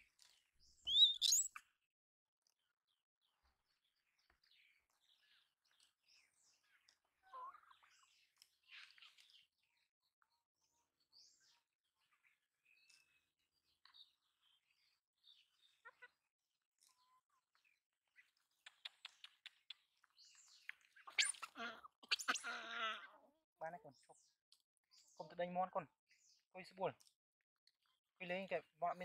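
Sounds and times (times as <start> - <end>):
bird chirps and whistles: 0.8 - 1.6, 21.0 - 21.5.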